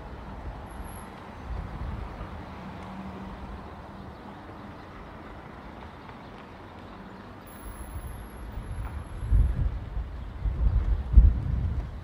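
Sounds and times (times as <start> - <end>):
low street background noise: 0.0 - 12.0
low rumble in gusts: 8.5 - 12.0.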